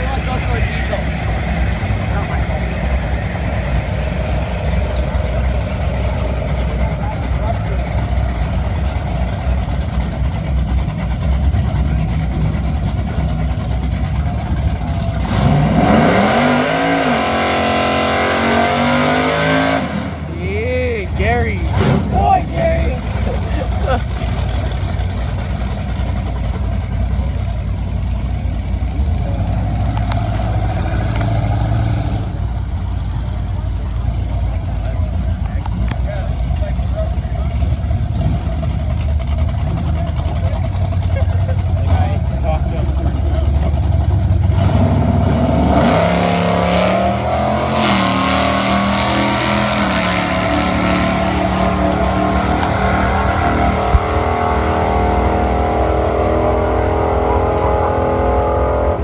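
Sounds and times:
drag car engine idling: 0.0 - 15.8, 21.0 - 45.4.

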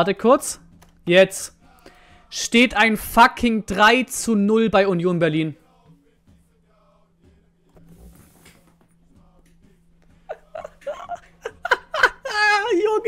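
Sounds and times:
man chuckling and laughing: 10.1 - 12.8.

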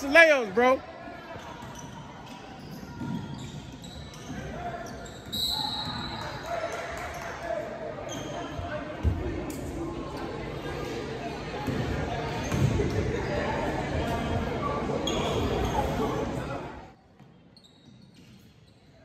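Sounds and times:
voices echoing in gym: 0.0 - 19.0.

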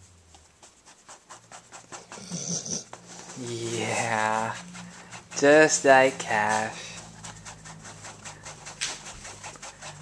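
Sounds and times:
fingers scratching puppy fur: 0.0 - 10.0.

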